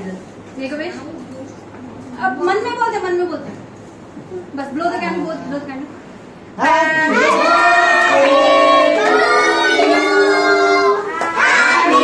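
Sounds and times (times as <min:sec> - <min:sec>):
child singing: 0:07.1 - 0:12.0.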